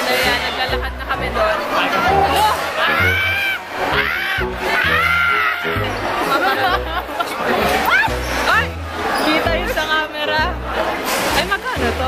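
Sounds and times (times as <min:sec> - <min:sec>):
loud music with heavy bass: 0:00.0 - 0:12.0
voices shouting long calls: 0:01.8 - 0:06.4.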